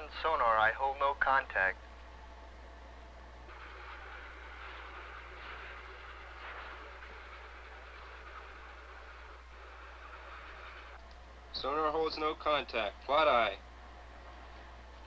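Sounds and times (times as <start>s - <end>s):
low steady hum: 0.0s - 15.0s
steady rushing hiss: 3.4s - 15.0s.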